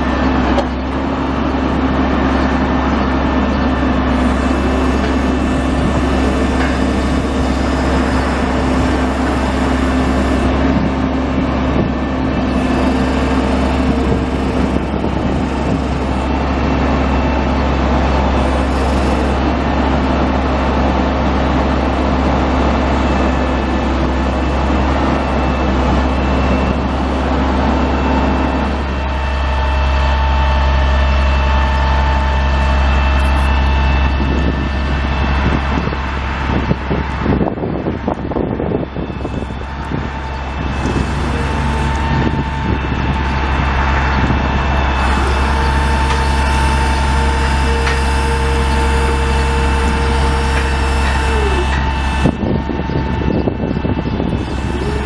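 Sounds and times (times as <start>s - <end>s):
diesel truck engine droning: 0.0s - 55.0s
thin whines: 39.0s - 55.0s.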